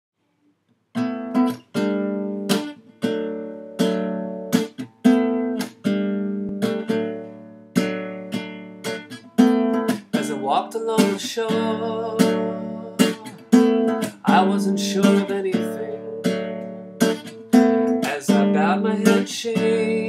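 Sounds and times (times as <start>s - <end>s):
acoustic guitar strumming chords: 1.0s - 20.0s.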